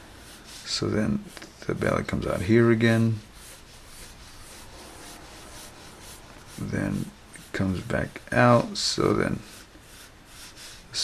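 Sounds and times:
pencil scratching on paper: 0.1s - 11.0s.

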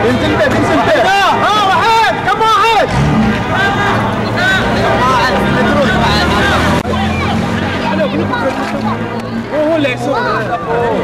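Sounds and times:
spectators shouting: 0.5s - 9.2s
car engine at high revs: 2.7s - 10.1s.

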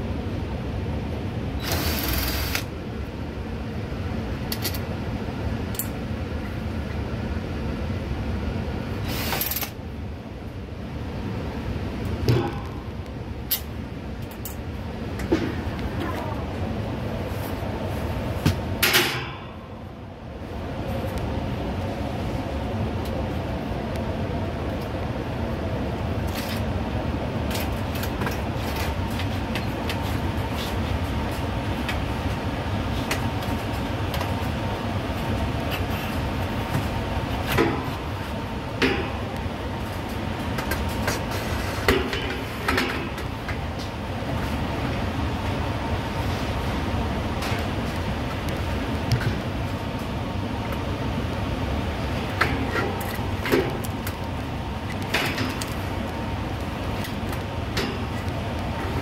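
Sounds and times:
steady mechanical hum: 0.0s - 59.0s.

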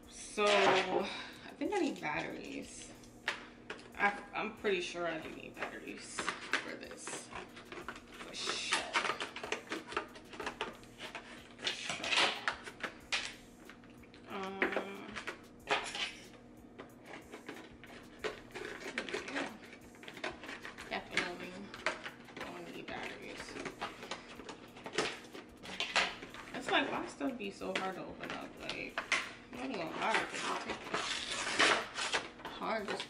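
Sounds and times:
person humming: 14.2s - 15.2s.

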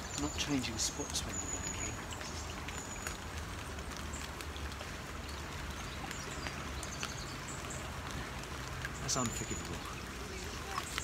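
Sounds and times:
light rain pattering: 0.0s - 11.0s.

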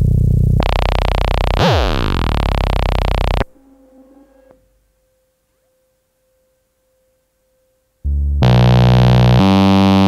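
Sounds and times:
faint steady synthesizer tone: 0.0s - 10.0s.

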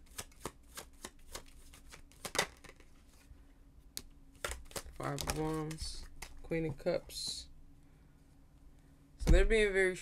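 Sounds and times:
cards being shuffled: 0.0s - 3.3s, 4.0s - 6.6s.

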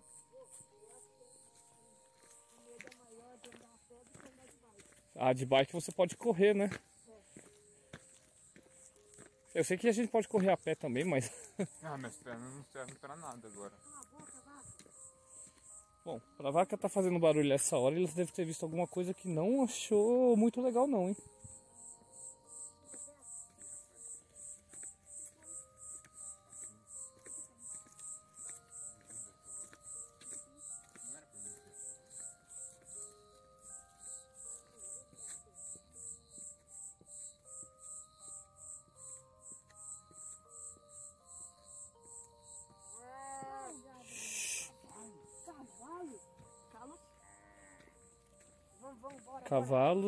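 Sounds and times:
cricket chirping: 0.0s - 50.0s
faint music of held notes: 0.0s - 50.0s.

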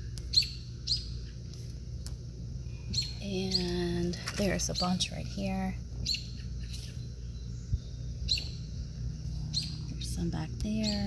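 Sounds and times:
bird chirping: 0.0s - 2.1s, 2.8s - 11.0s
steady low background noise: 0.0s - 11.0s.

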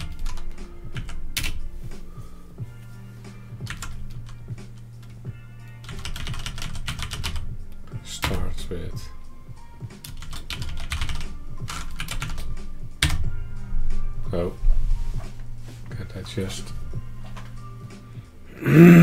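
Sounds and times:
typing on computer keyboard: 0.0s - 1.6s, 5.8s - 7.4s, 10.0s - 13.2s.

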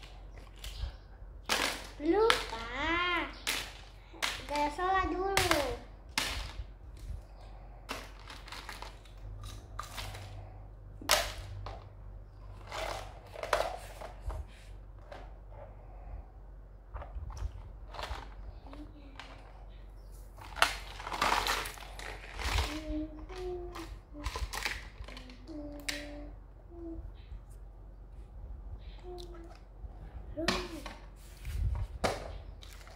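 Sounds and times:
plastic toy pieces clattering: 1.5s - 4.8s, 7.9s - 10.4s, 12.5s - 14.2s, 17.3s - 19.5s, 20.4s - 26.2s
child's vocal sounds: 2.0s - 3.4s, 22.4s - 27.3s, 28.8s - 29.6s.

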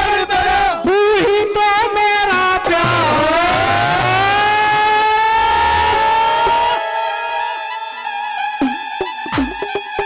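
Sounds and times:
sustained accompaniment chord: 2.2s - 9.3s
person singing a long note: 2.5s - 8.8s.

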